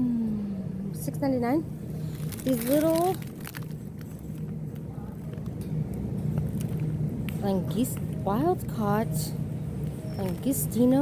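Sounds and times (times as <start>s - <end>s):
supermarket background hum: 0.0s - 11.0s.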